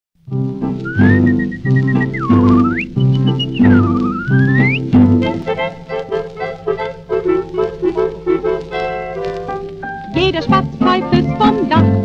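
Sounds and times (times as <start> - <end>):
whistled melody: 0.8 - 10.0.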